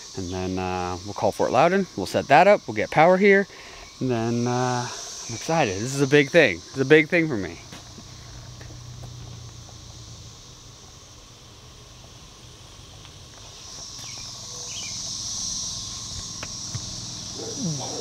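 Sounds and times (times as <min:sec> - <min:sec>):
cicadas droning: 0:00.0 - 0:18.0.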